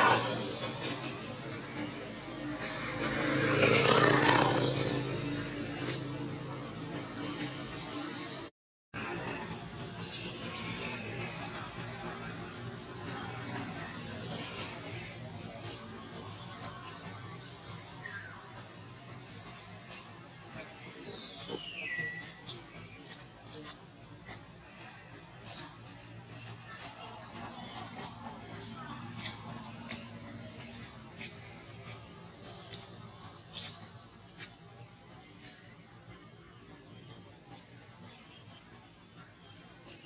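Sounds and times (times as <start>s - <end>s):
vehicle engine passing: 0.0s - 35.2s
birds chirping: 9.0s - 40.0s.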